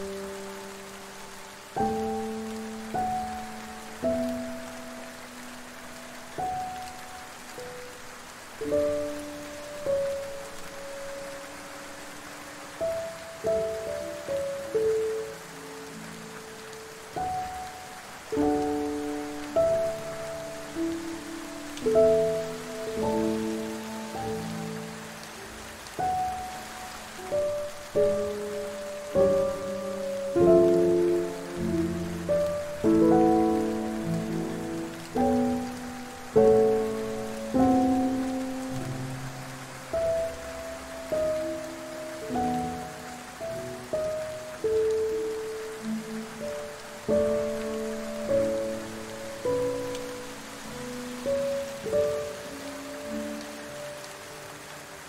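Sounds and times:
soft slow piano music: 0:00.0 - 0:55.0
steady hiss of rain: 0:00.0 - 0:55.0.

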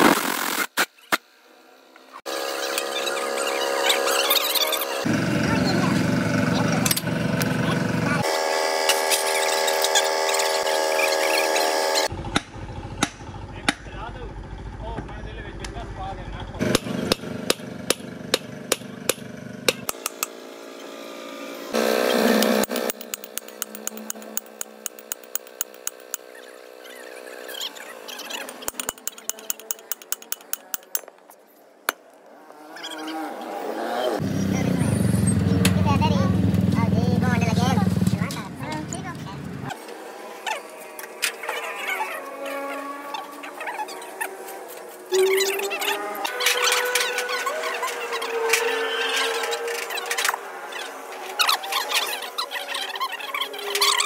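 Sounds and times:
workshop voices: 0:02.6 - 0:08.4, 0:13.4 - 0:16.8, 0:33.8 - 0:54.0
metal clicks and taps of spanners: 0:22.7 - 0:26.2, 0:28.4 - 0:31.1.

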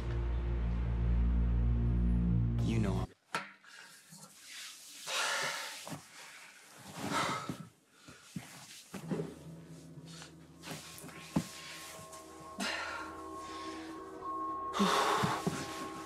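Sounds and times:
soft music: 0:00.0 - 0:03.2, 0:09.0 - 0:16.0.

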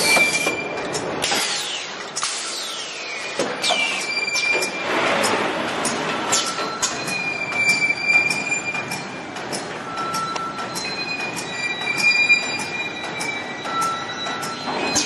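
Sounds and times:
rhythmic mechanical clacking: 0:00.0 - 0:15.0.

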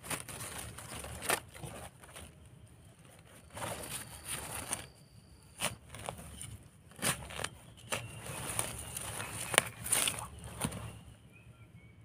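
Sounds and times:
knife scraping soil: 0:03.2 - 0:11.0.

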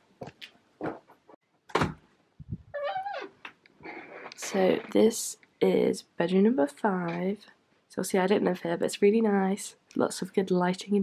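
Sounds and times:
door hinge creaking: 0:02.7 - 0:05.0.

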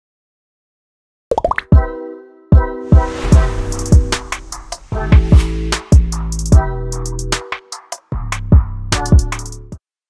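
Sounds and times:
bubbly plops rising in pitch: 0:01.3 - 0:01.7
deep hit: 0:03.0 - 0:06.8.

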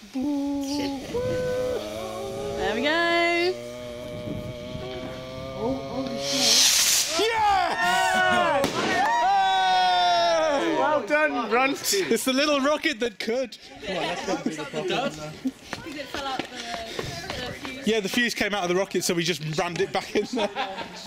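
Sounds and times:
firework fuse burning: 0:00.0 - 0:05.0, 0:06.0 - 0:09.3
voices singing long notes: 0:00.0 - 0:08.7
voices whooping: 0:00.6 - 0:03.7, 0:04.8 - 0:11.1
rocket launching hiss: 0:06.0 - 0:07.6, 0:08.6 - 0:09.1.

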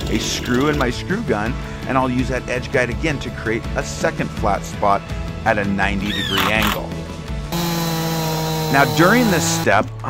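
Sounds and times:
chainsaw cutting wood: 0:07.5 - 0:09.7.

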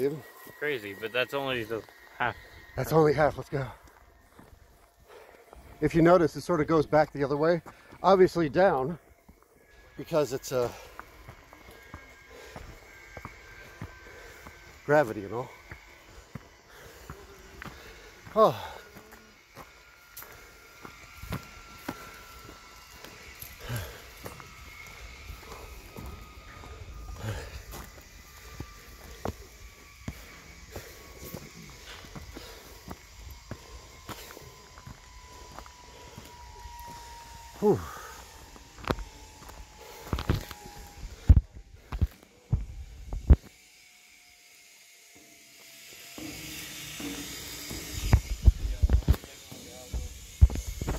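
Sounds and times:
footsteps on a trail: 0:00.0 - 0:43.6, 0:45.2 - 0:50.9
faint high whine falling in pitch: 0:00.0 - 0:50.9.

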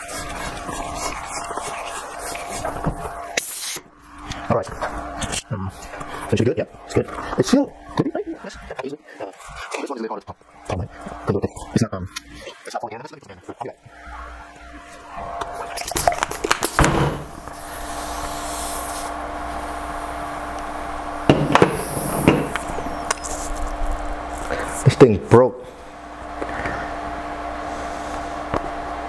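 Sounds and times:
hand ball pump strokes: 0:00.0 - 0:03.8, 0:17.4 - 0:19.8
steady hiss: 0:17.3 - 0:25.0
knocks and rubbing from handling: 0:21.3 - 0:22.8.

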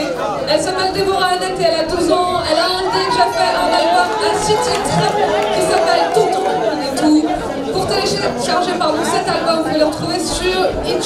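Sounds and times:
murmur of overlapping chatter: 0:00.0 - 0:11.0.

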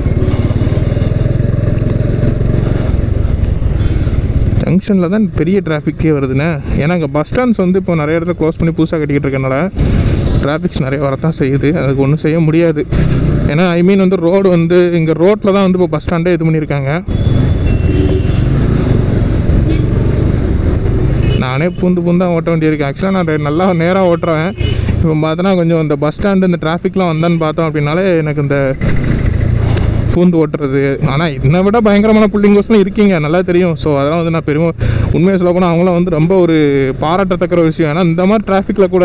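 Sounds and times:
motorcycle engine running: 0:00.0 - 0:04.4.

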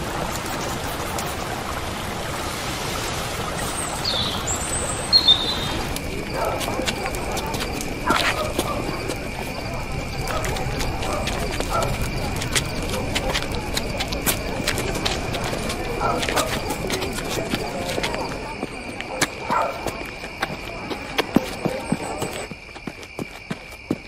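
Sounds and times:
bird chirps: 0:03.7 - 0:05.9
faint murmuring voices: 0:05.2 - 0:23.2.

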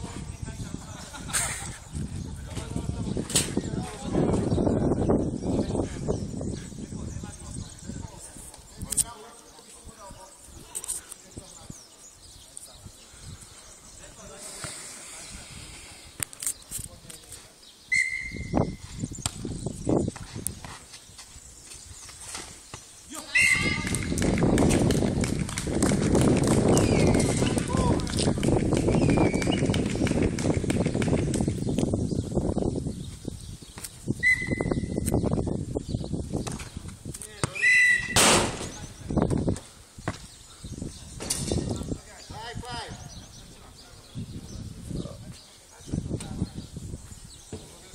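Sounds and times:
indistinct voices outdoors: 0:00.0 - 0:18.7, 0:22.6 - 0:29.3, 0:37.1 - 0:47.9
faint voices: 0:05.5 - 0:17.6
steady hiss: 0:13.0 - 0:17.8
loud hiss: 0:14.3 - 0:16.2.

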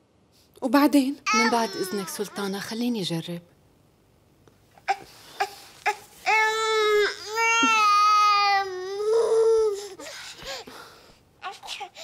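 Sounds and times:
baby crying: 0:01.3 - 0:02.8, 0:04.9 - 0:10.6, 0:11.4 - 0:12.0.

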